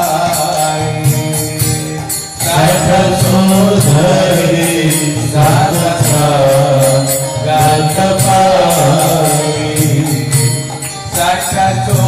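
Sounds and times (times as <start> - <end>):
hand cymbals clinking: 0.0 - 12.0
person chanting to music: 0.0 - 12.0.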